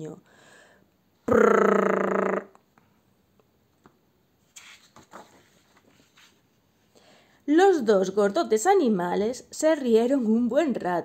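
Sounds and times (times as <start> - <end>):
person blowing a raspberry: 1.2 - 2.6
page turning rustle: 4.4 - 6.6.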